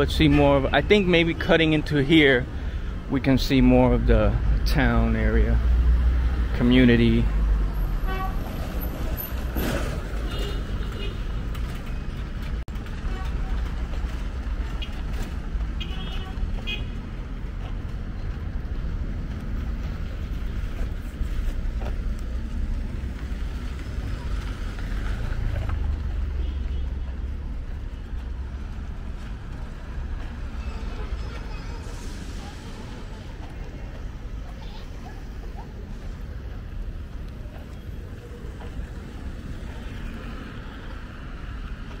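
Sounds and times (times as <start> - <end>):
cars passing: 0.0 - 42.0
low traffic rumble: 0.0 - 42.0.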